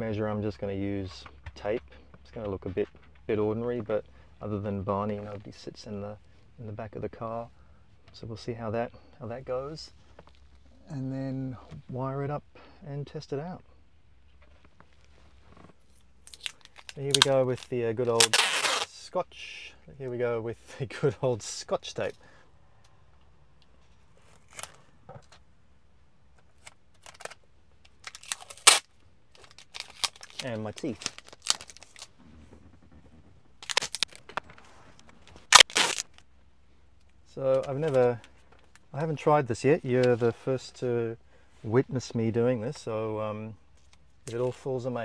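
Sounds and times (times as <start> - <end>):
tape pulled off roll: 15.4 - 18.9, 28.0 - 36.2
tape roll handling clicks: 26.4 - 32.1, 33.6 - 34.6.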